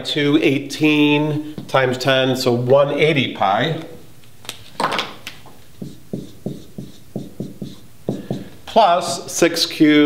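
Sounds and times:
marker writing on whiteboard: 0:05.5 - 0:09.4.

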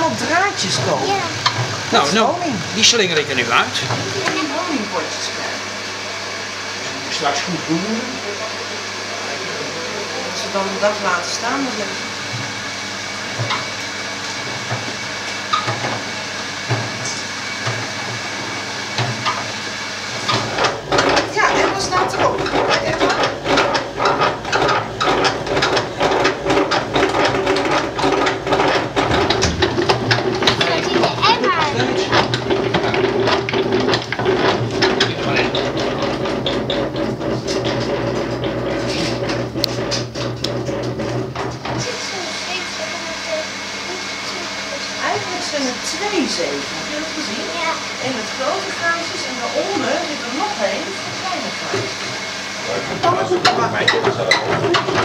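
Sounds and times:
steady machine hum: 0:00.0 - 0:55.0
gears clattering: 0:20.3 - 0:41.4.

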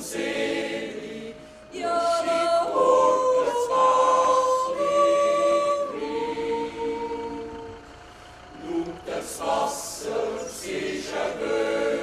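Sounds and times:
choir singing long chords: 0:00.0 - 0:12.0.

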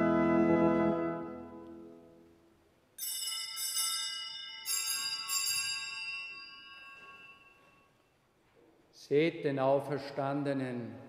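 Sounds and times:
altar bells ringing: 0:03.0 - 0:08.2.

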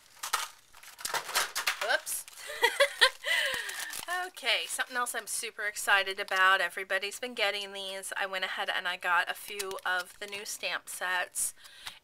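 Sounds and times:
plastic packaging clicks: 0:00.0 - 0:04.8, 0:09.4 - 0:10.5
plastic packaging crinkling: 0:00.0 - 0:06.7, 0:09.2 - 0:11.9.

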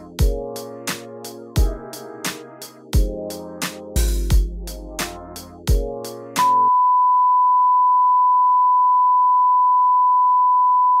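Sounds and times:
sine test tone: 0:06.4 - 0:11.0.

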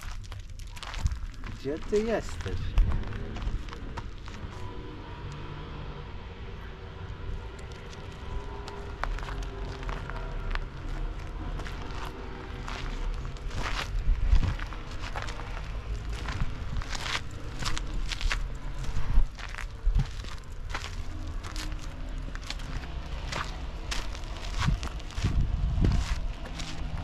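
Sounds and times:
footsteps crunching on gravel: 0:00.0 - 0:04.8, 0:07.3 - 0:27.0
low steady rumble: 0:00.0 - 0:27.0.

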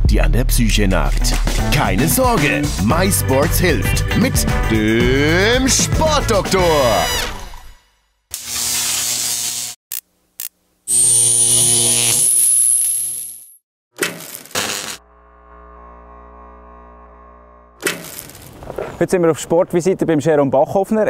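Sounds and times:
crackling electrical buzz: 0:08.3 - 0:13.4, 0:14.1 - 0:18.8
high whine rising in pitch: 0:10.9 - 0:13.2, 0:15.0 - 0:17.8.

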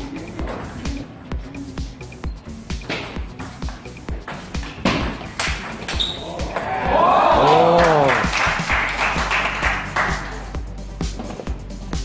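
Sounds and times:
person shouting: 0:06.2 - 0:08.3
spectators clapping: 0:06.4 - 0:10.5.

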